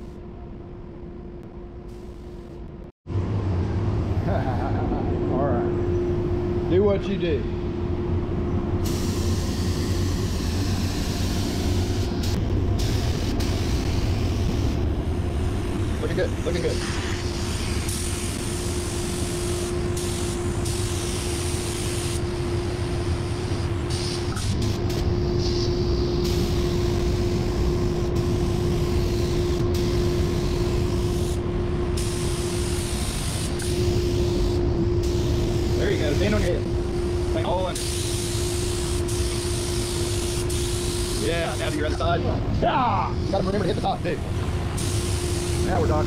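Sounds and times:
steady drone with pitched tone: 1.9 - 46.0
paint spray gun hissing: 8.8 - 14.5, 17.3 - 22.2, 23.2 - 31.4, 32.0 - 36.4, 37.8 - 41.7, 44.8 - 45.6.

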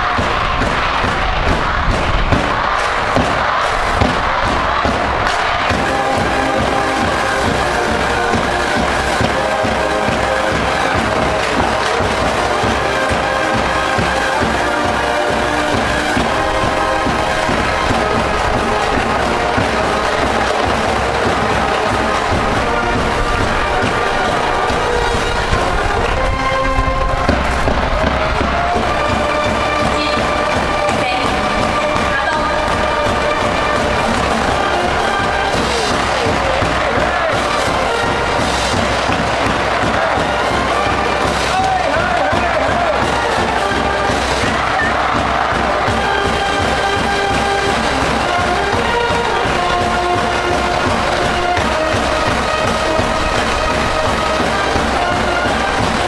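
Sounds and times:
brass band playing: 0.0 - 56.0
crowd voices: 0.0 - 56.0.

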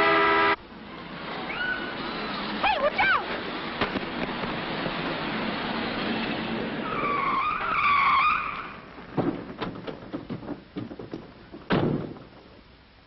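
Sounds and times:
truck engine rumbling: 0.0 - 13.0
truck tyres screeching: 1.2 - 12.6
short knocks: 9.1 - 12.6.

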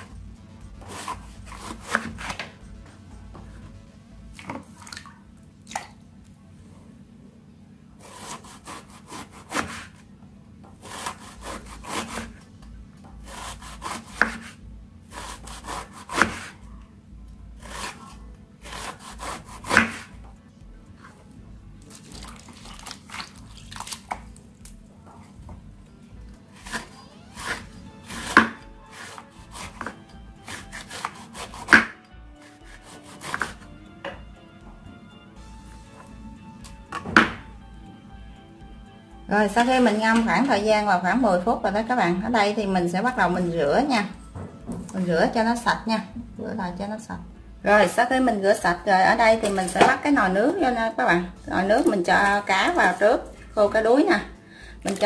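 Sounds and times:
faint background music: 0.0 - 55.0
knife slicing on cutting board: 0.8 - 2.5, 8.0 - 10.0, 10.8 - 12.4, 13.2 - 16.6, 17.6 - 20.1, 26.6 - 33.6
blade knocking on board: 36.9 - 37.5.

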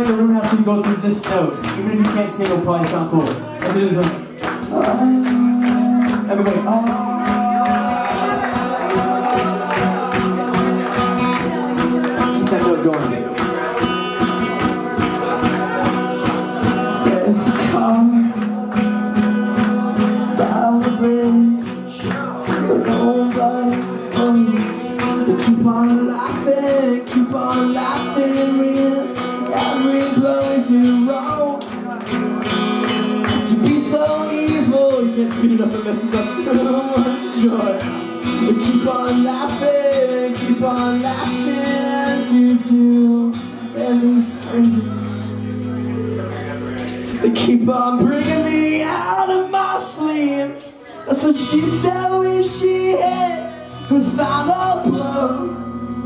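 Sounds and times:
man singing: 0.0 - 32.4, 33.0 - 55.7
acoustic guitar strummed: 0.0 - 56.0.

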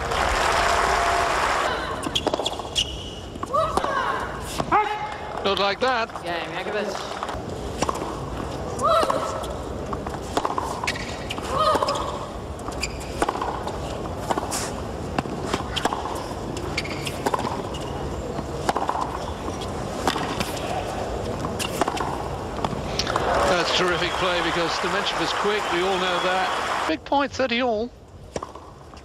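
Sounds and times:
crowd noise: 17.7 - 27.4.

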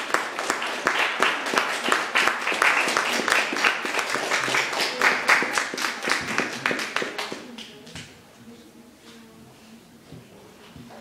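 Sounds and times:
small audience applauding: 0.0 - 8.0.

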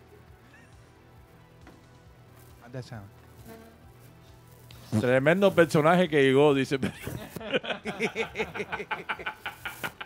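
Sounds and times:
men laughing hard: 6.8 - 10.0.

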